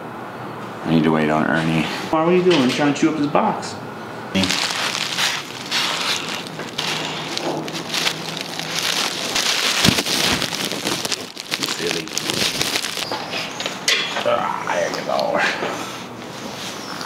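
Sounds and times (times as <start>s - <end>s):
bubble wrap crinkling: 4.4s - 13.6s.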